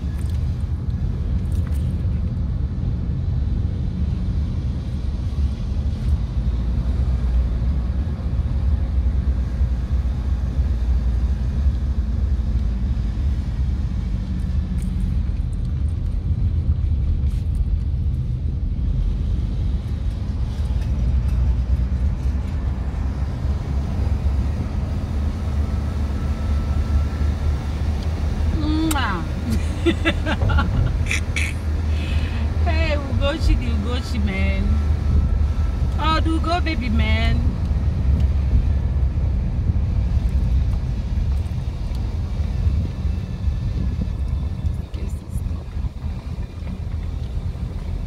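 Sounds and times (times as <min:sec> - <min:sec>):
car engine and road noise: 0:00.0 - 0:48.0.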